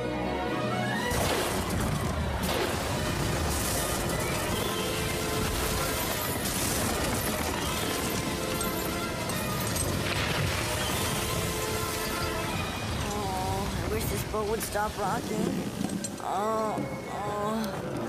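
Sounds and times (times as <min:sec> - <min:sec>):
film score music: 0:00.0 - 0:18.0
rain and sea rushing: 0:01.2 - 0:16.2.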